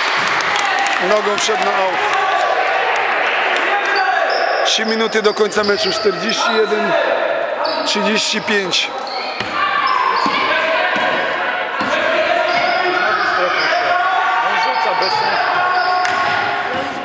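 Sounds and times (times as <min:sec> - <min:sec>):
young voices shouting: 0:09.3 - 0:17.0.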